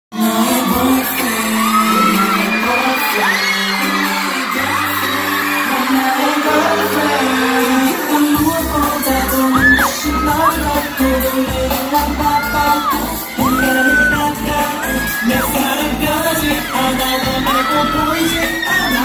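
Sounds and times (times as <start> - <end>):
live pop music with singing: 0.1 - 19.0
crowd cheering: 0.2 - 19.0
steady bass beat: 8.4 - 19.0.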